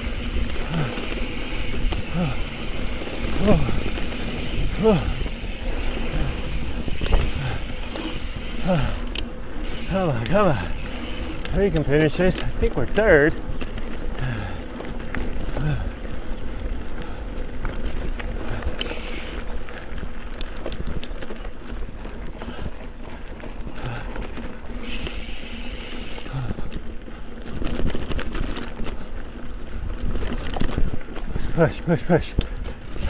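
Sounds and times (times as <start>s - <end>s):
bike rattling clicks: 0.0s - 33.0s
bike tyres on dirt: 0.0s - 33.0s.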